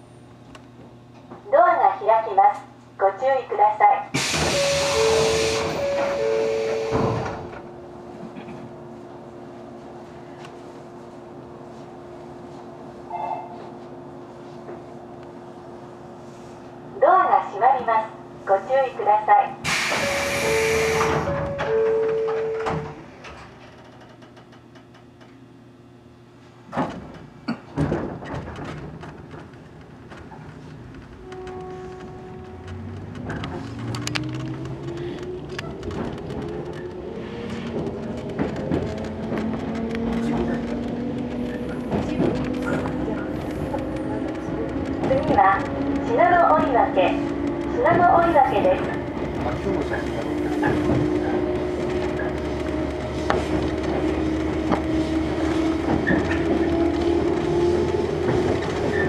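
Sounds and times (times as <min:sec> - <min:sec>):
train traction motor whine: 0:04.1 - 0:13.9, 0:17.3 - 0:26.2, 0:30.9 - 0:59.0.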